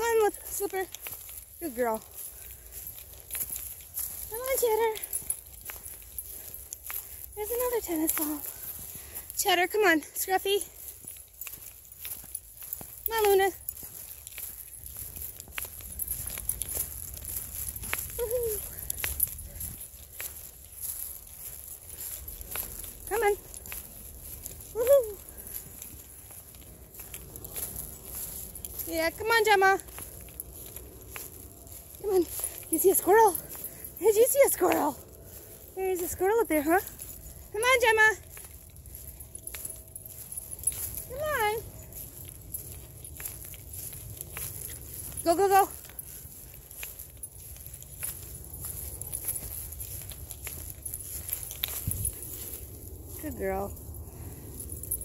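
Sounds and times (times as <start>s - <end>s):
footsteps on muddy trail: 0.0s - 55.0s
light metallic jingling: 0.0s - 55.0s.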